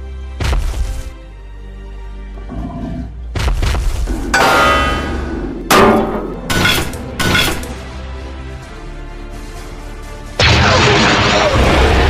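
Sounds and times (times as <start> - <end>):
metallic ring: 4.4 - 7.6
metal drums struck and knocked over: 4.4 - 7.7.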